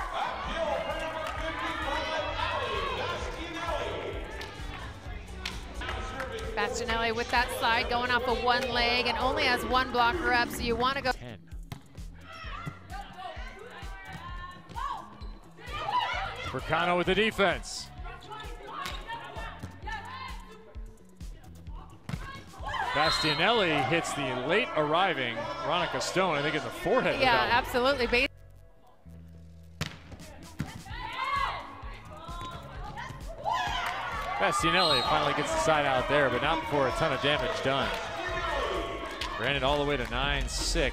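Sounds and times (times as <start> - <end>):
arena music with low beat: 0.0 - 40.9
volleyball slaps: 4.2 - 6.5, 29.8 - 30.9
shoes squeaking on court floor: 15.0 - 15.6, 34.6 - 35.5
volleyball struck with slaps: 29.8 - 30.9.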